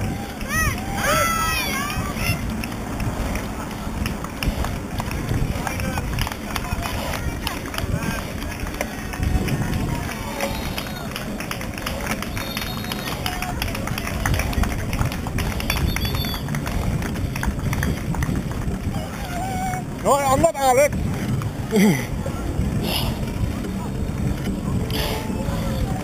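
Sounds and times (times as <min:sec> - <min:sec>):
bike rattling ticks: 0:00.0 - 0:26.0
road rumble: 0:00.0 - 0:26.0
wind on microphone: 0:00.0 - 0:26.0.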